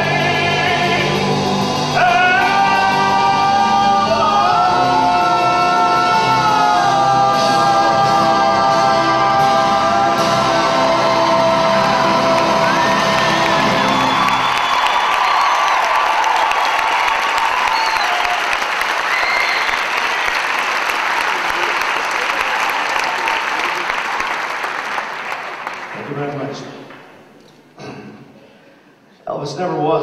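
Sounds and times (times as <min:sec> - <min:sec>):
live band with horns: 0:00.0 - 0:15.2
audience applauding and cheering: 0:00.0 - 0:27.4
whoops: 0:12.3 - 0:20.2, 0:21.4 - 0:24.0.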